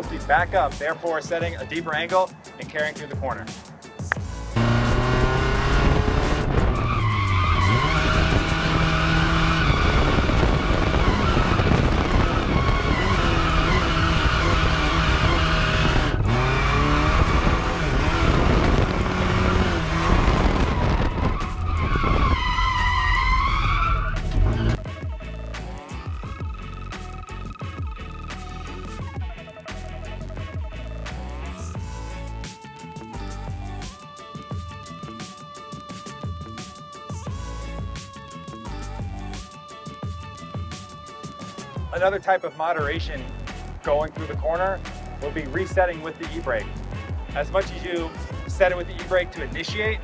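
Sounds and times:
car engine revving high: 0:04.4 - 0:24.8
tyres squealing: 0:05.2 - 0:18.3, 0:19.0 - 0:24.8.

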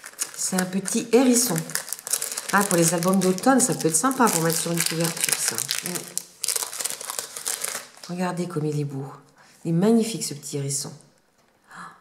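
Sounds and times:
plastic bag crinkling: 0:00.0 - 0:08.2.

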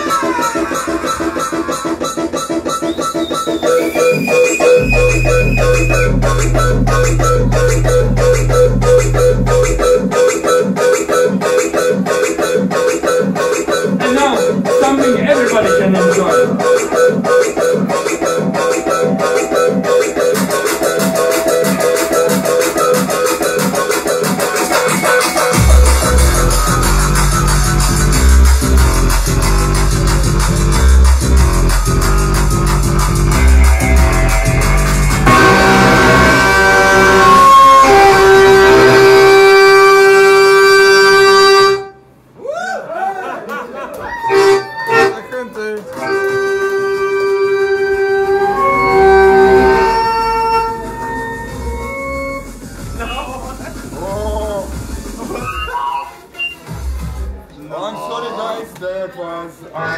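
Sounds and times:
live punk band playing: 0:33.0 - 0:38.9.

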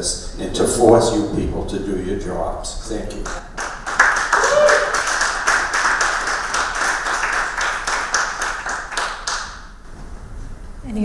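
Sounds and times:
audience applauding: 0:03.2 - 0:09.7.

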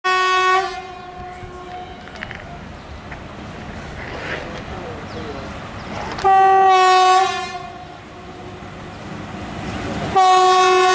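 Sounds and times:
locomotive horn blast: 0:00.1 - 0:02.3, 0:06.2 - 0:08.6, 0:10.1 - 0:10.9
train rumble: 0:00.1 - 0:10.9.

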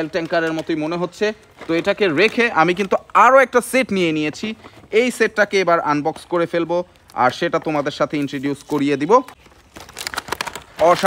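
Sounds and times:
cardboard box crinkling: 0:00.0 - 0:06.3, 0:06.9 - 0:11.0.

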